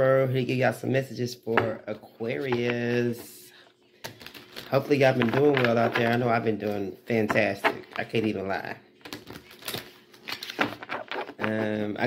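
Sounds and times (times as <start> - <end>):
cards being shuffled: 4.0 - 8.4, 9.0 - 12.0.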